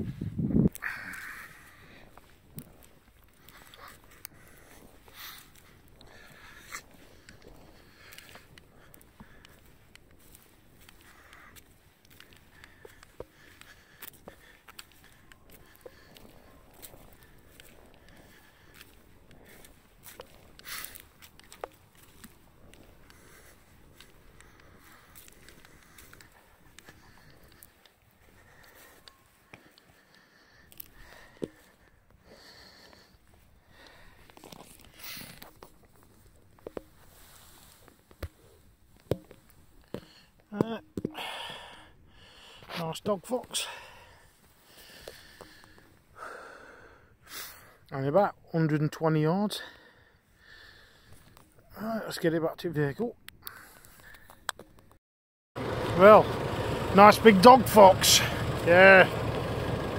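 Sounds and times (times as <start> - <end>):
footsteps through grass: 1.6 - 29.5
small clicks and rustles: 2.0 - 31.9, 32.8 - 40.2.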